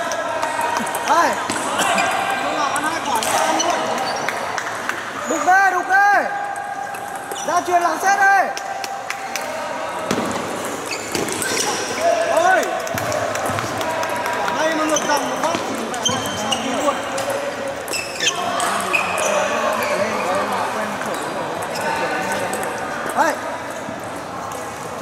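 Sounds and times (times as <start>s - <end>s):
chatter of many voices: 0.0s - 25.0s.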